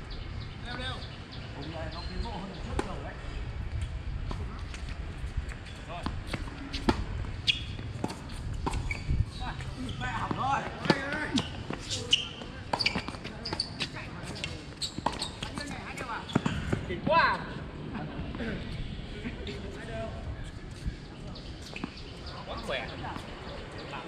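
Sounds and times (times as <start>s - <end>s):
tennis balls struck by rackets: 6.0s - 9.0s, 9.6s - 16.8s
people talking: 9.3s - 24.0s.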